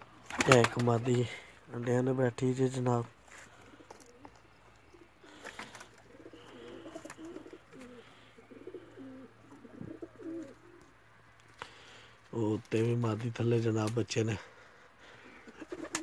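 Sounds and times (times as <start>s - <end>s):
pigeons cooing: 3.3s - 12.1s, 15.0s - 16.0s.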